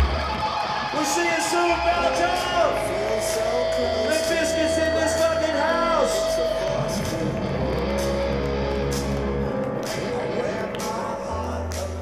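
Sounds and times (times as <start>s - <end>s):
live rock band over loudspeakers: 0.0s - 12.0s
held bass notes: 1.7s - 12.0s
electric guitar: 2.7s - 12.0s.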